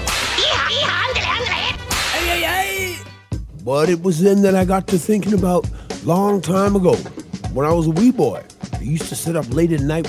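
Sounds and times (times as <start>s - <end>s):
whip-crack: 0.0s - 0.6s, 1.9s - 2.2s.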